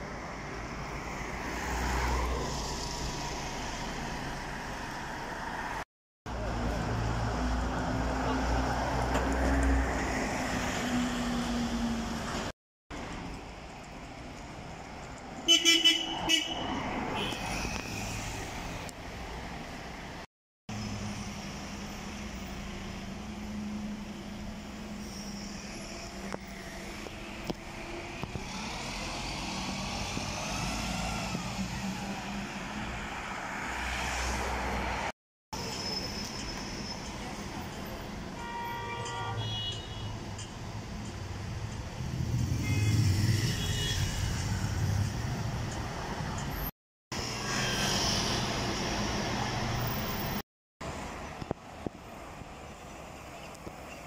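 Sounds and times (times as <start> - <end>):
buses running in traffic: 0.0 - 54.0.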